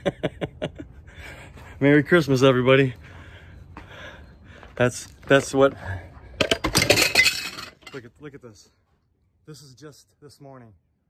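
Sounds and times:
rattling and clinking: 0:06.4 - 0:08.0.

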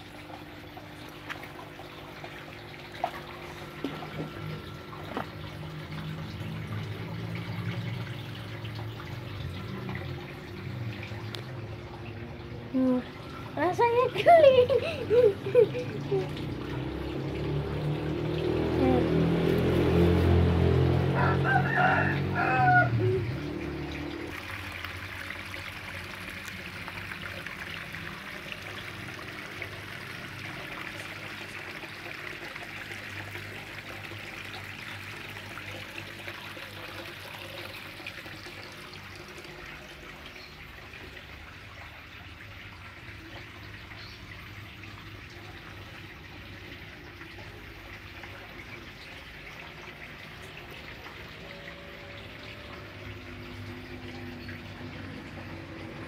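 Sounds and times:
running water trickling: 0:00.0 - 0:56.0
rooster crowing: 0:21.1 - 0:23.2.

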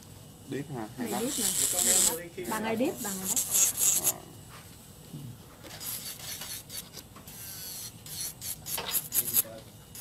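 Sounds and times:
high scratchy rubbing hiss: 0:01.1 - 0:04.2.

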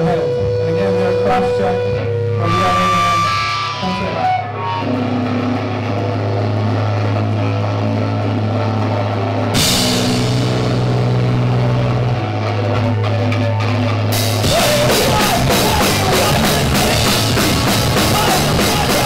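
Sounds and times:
live rock band: 0:00.0 - 0:19.0
rapid drum hits: 0:14.2 - 0:19.0.

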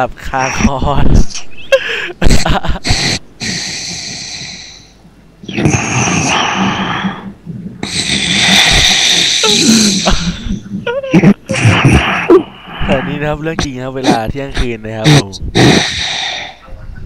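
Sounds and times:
person snoring: 0:05.5 - 0:10.5, 0:15.0 - 0:16.6.

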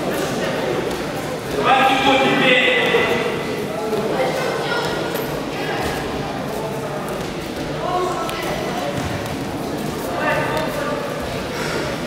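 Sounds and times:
murmur of people: 0:00.0 - 0:12.0.

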